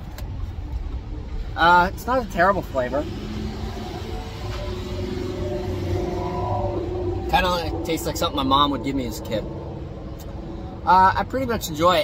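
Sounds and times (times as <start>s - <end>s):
road traffic rumble: 0.0s - 12.0s
faint engine note: 2.8s - 11.4s.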